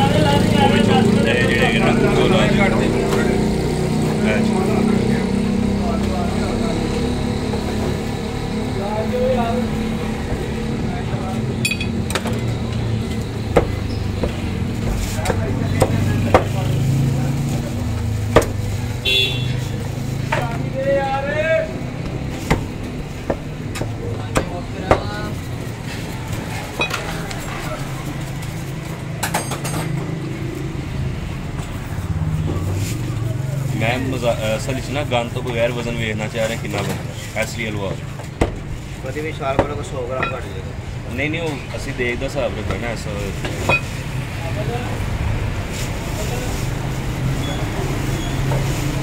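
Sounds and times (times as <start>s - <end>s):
steady motor drone: 0.0s - 14.8s
people talking in background: 0.0s - 29.3s, 29.9s - 49.0s.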